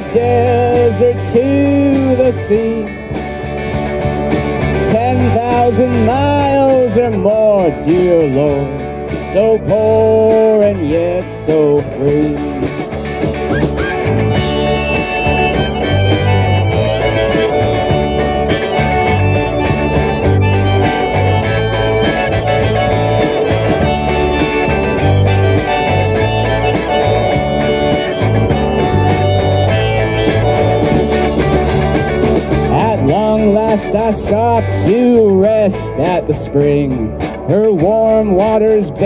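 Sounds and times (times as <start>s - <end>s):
electric bass: 0.0s - 39.0s
strummed guitars: 0.0s - 39.0s
hand drum: 13.4s - 33.3s
harmonica solo: 13.4s - 33.5s.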